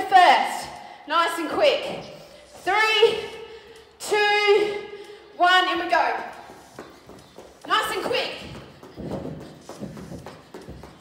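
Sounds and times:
footfalls on foam mat: 0:08.2 - 0:11.0.

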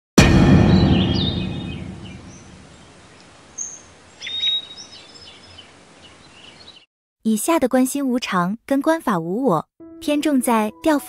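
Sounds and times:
intro music: 0:00.2 - 0:02.7
birds chirping: 0:00.7 - 0:06.9
outdoor background hiss: 0:02.3 - 0:06.8
short high bird calls: 0:03.6 - 0:06.8.

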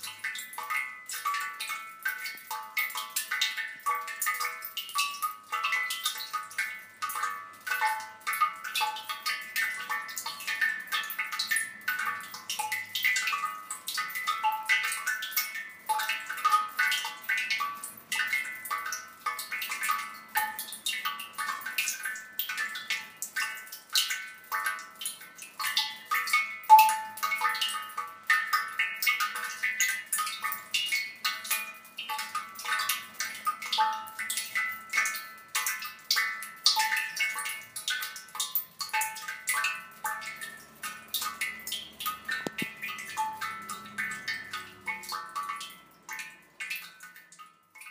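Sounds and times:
water drops ringing in ceramic pot: 0:00.0 - 0:47.9.

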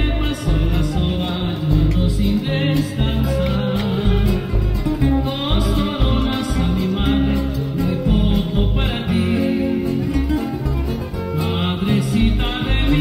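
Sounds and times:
acoustic guitars playing: 0:00.0 - 0:13.0
deep bass line: 0:00.0 - 0:13.0.

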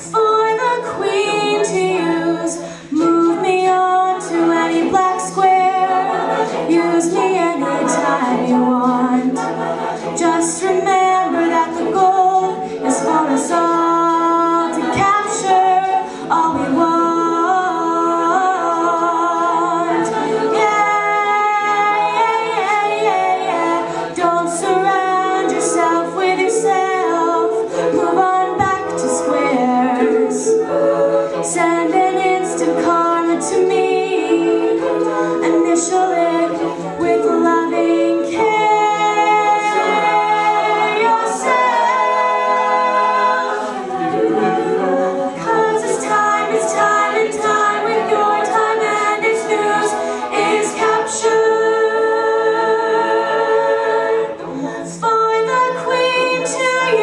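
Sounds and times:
vocal group backing chords: 0:00.0 - 0:57.0
woman singing lead: 0:00.0 - 0:57.0.

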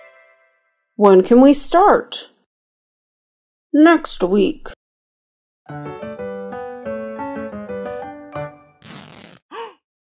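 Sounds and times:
piano background music: 0:05.7 - 0:08.8
person sighing: 0:09.5 - 0:09.8.

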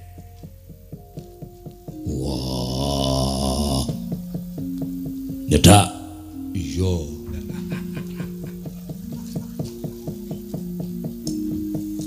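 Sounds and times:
gamelan metallophone notes: 0:00.0 - 0:12.0
low wavering voice: 0:02.0 - 0:04.2, 0:05.5 - 0:08.5.

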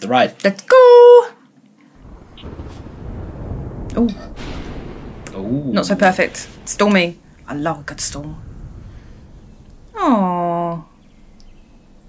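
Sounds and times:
low thunder rumbling: 0:02.0 - 0:12.0.

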